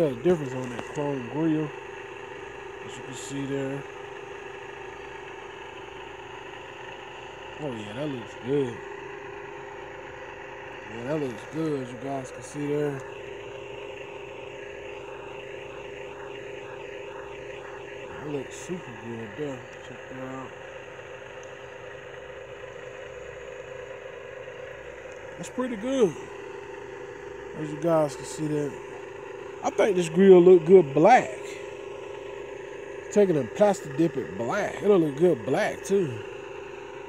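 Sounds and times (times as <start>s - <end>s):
steady mechanical hum: 0.0s - 37.0s.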